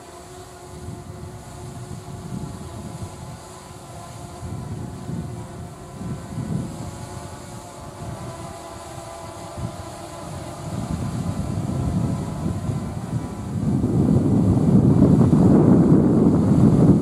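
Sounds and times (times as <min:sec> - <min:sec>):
electric train hum and rumble: 0:00.0 - 0:17.0.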